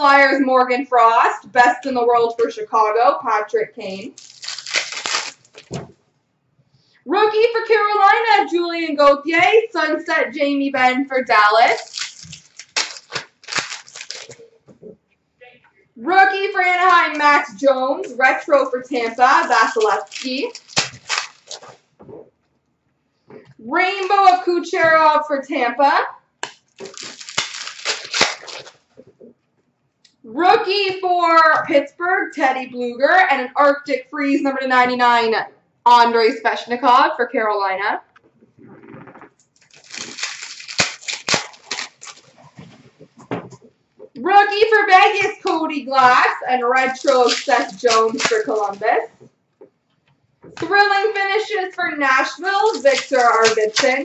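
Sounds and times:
foil wrapper crinkling and tearing: 3.8 - 5.9, 11.3 - 14.5, 18.3 - 21.9, 26.4 - 29.0, 39.5 - 43.2, 45.0 - 49.1, 52.1 - 54.0
trading cards rustling and slapping: 4.1 - 6.0, 11.6 - 14.5, 18.2 - 21.9, 26.4 - 29.2, 38.8 - 43.7, 45.1 - 49.3, 52.2 - 54.0.

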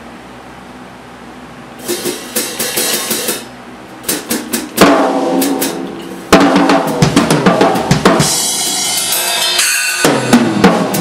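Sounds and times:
cymbal crash and bass drum: 1.8 - 11.0
drum kit playing: 1.8 - 11.0.

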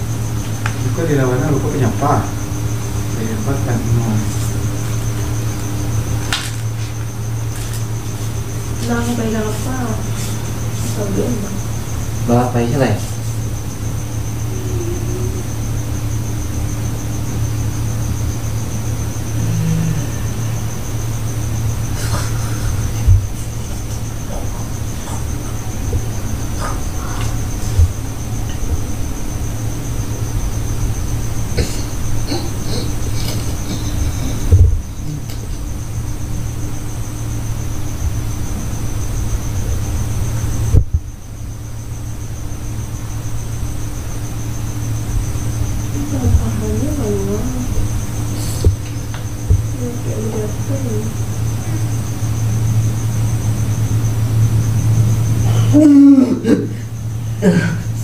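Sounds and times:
crickets trilling: 0.0 - 58.0.

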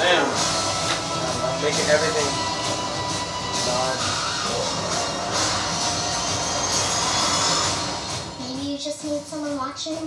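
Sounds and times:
trailer music: 0.0 - 9.6.

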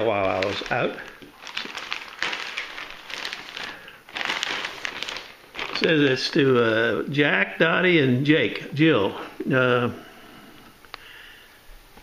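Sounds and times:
plastic mailer crinkling: 0.0 - 6.6.

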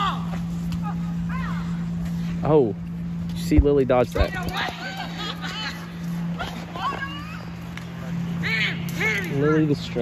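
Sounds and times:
young people shouting: 0.0 - 1.8, 8.3 - 9.4
steady low hum: 0.0 - 10.0.

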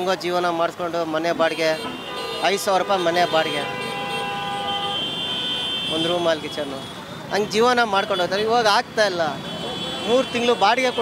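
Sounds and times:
traffic hum: 0.0 - 11.0
vehicle horns honking: 1.4 - 8.5, 9.3 - 11.0.

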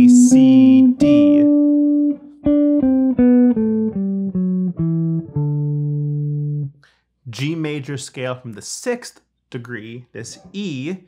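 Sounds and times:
electric guitar picking single notes: 0.0 - 6.8.

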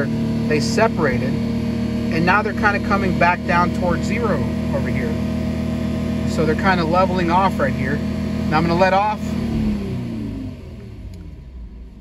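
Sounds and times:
car engine revving down to idle: 0.0 - 12.0.

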